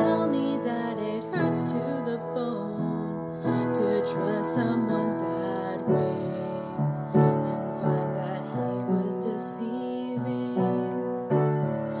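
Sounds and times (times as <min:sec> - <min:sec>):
piano sustained chords: 0:00.0 - 0:12.0.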